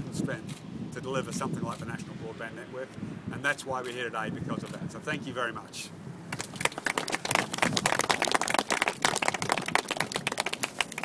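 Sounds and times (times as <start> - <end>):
audience applauding: 6.4 - 11.0.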